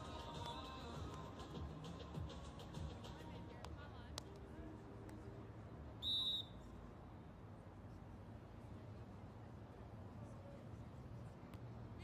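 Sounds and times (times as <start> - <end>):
referee's whistle blast: 6.0 - 6.6.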